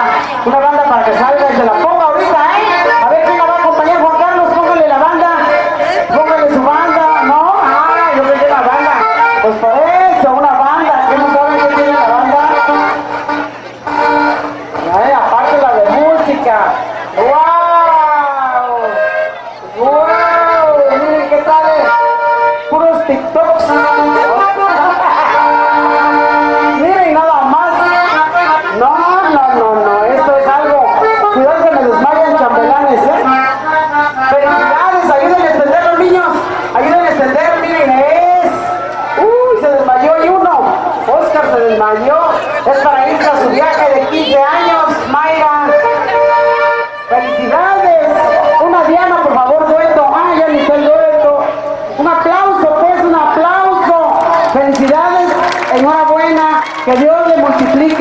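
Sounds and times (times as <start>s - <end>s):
music: 1.2s - 16.0s, 18.0s - 37.6s, 44.6s - 52.0s.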